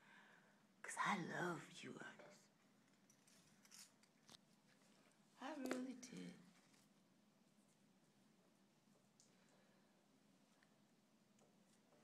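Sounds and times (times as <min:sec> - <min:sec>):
faint soft hiss: 0:00.0 - 0:12.0.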